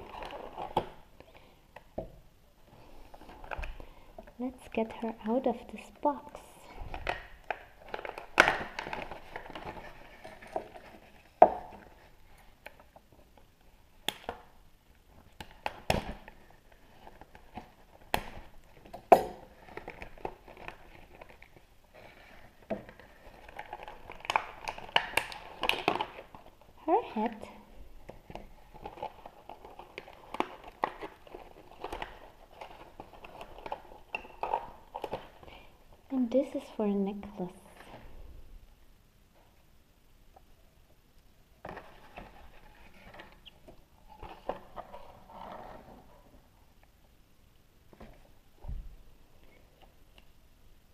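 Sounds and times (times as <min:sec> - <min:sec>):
plastic packaging crinkling: 0:06.9 - 0:13.1, 0:15.1 - 0:35.7.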